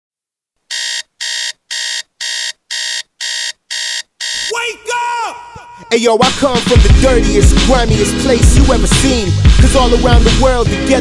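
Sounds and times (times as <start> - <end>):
alarm clock beeping: 0.7 - 4.6.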